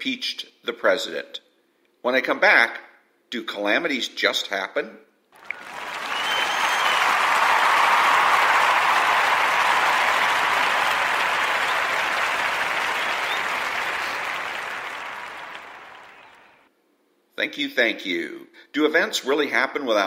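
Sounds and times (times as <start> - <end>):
audience applause: 5.4 - 16.6.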